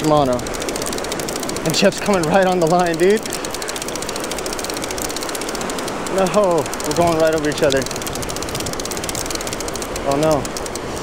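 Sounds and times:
fishing reel ratchet clicking: 0.0s - 11.0s
surf noise: 0.0s - 11.0s.

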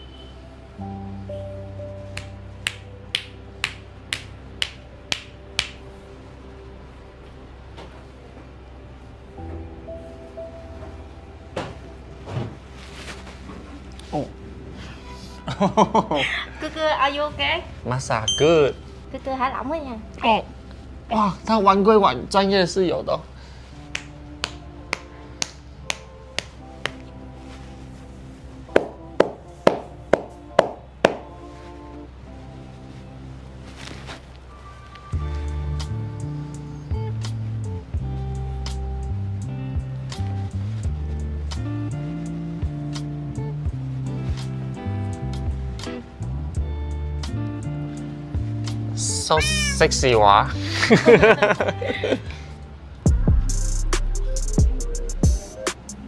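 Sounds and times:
background music: 0.0s - 56.0s
hands slapping thighs: 2.2s - 5.8s, 23.9s - 27.1s, 28.8s - 31.3s
hands striking a leg: 28.8s - 31.3s.

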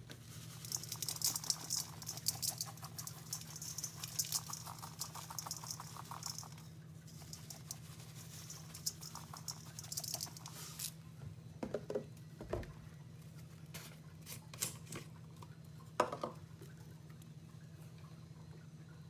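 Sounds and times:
low steady hum: 0.0s - 19.0s
patter of grains landing: 0.1s - 11.0s.

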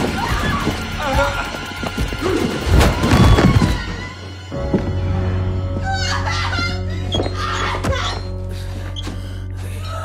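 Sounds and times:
tense horror score music: 0.0s - 10.0s.

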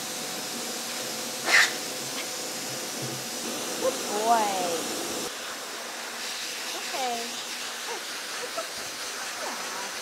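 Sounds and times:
blow dryer blowing air: 0.0s - 10.0s.

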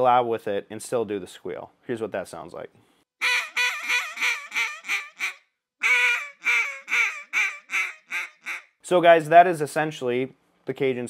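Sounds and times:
duck call quacks: 3.2s - 8.7s.

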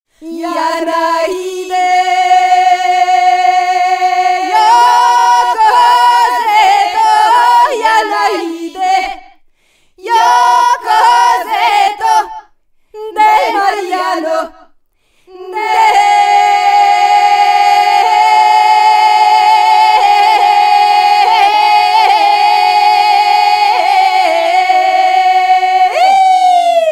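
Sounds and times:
voices singing: 0.2s - 26.9s.

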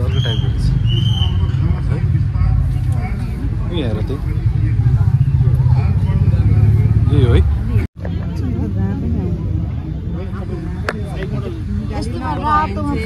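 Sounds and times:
background chatter of voices: 0.0s - 13.0s.

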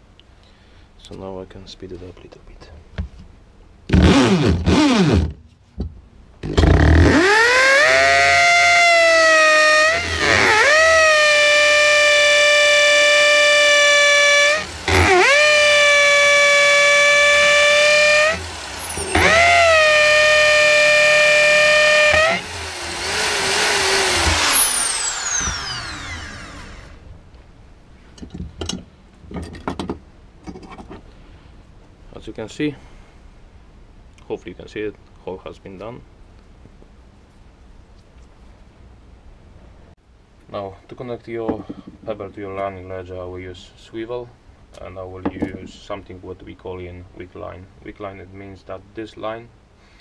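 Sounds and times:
electric drill boring through stone: 6.5s - 27.0s.

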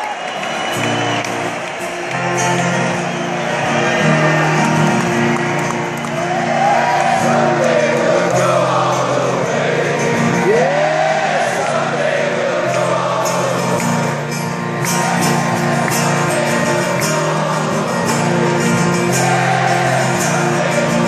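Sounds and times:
person singing: 7.2s - 14.3s, 15.1s - 21.0s.

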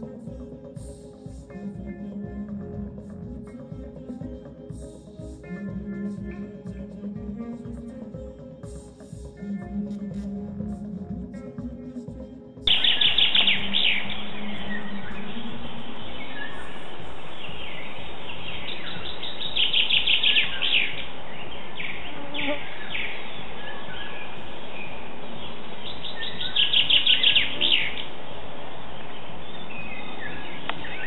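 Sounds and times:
music: 0.0s - 31.0s
steady background hiss: 0.0s - 31.0s
songbird trilling: 12.7s - 16.8s, 25.8s - 28.1s.

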